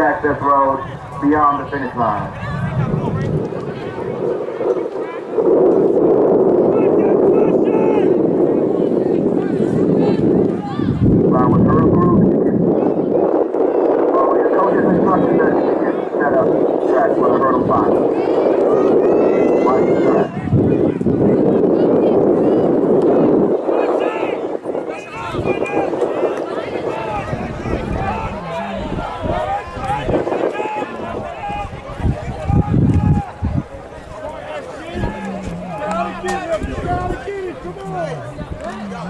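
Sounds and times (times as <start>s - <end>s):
crowd chatter: 0.0s - 39.0s.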